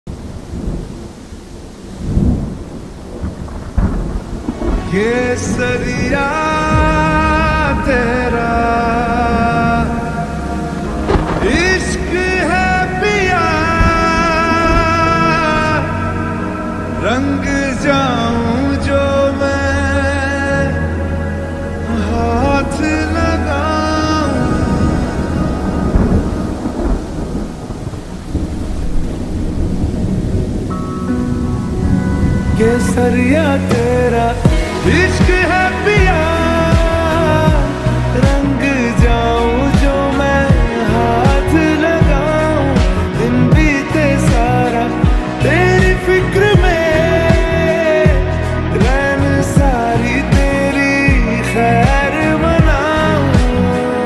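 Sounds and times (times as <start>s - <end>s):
rain: 0.1s - 54.0s
thunder rumbling: 0.1s - 54.0s
low hit: 3.2s - 54.0s.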